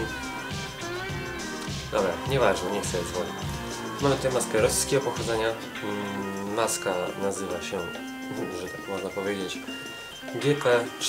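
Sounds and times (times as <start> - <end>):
background music: 0.0 - 11.0
phone ringtone melody: 0.0 - 11.0.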